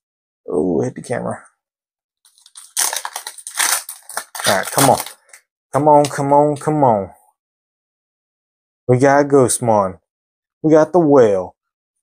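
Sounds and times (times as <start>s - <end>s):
foil wrapper crinkling: 2.3s - 5.4s.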